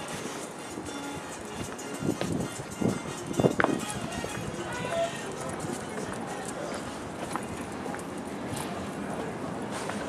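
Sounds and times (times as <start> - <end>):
indistinct voices of passers-by: 0.0 - 10.0.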